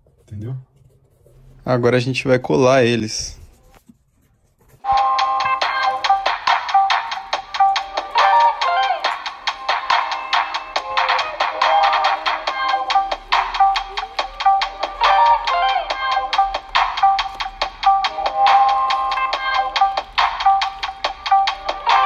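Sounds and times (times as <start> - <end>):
quick melody of repeated notes: 4.8 - 22.0.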